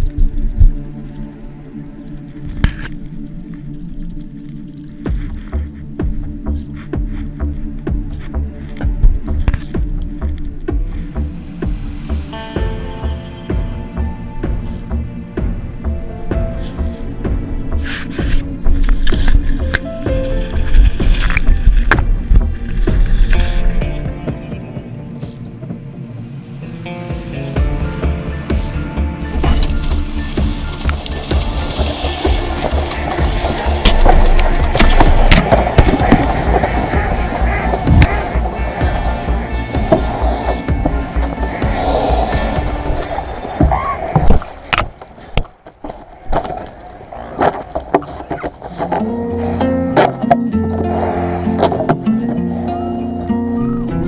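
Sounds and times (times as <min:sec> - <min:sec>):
background music: 0:00.0 - 0:43.9, 0:48.3 - 0:54.0
water splashing: 0:28.5 - 0:48.9.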